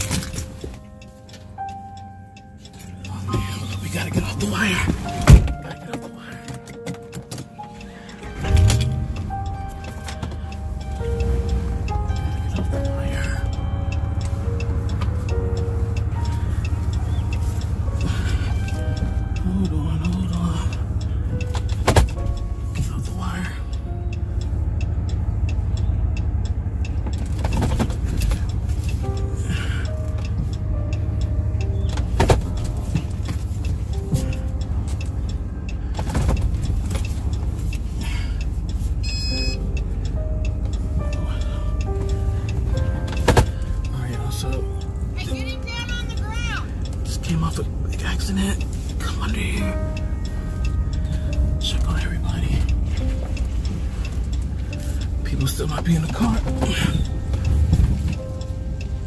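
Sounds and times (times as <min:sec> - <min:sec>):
car engine and road rumble: 0:00.0 - 0:59.0
music: 0:00.0 - 0:59.0.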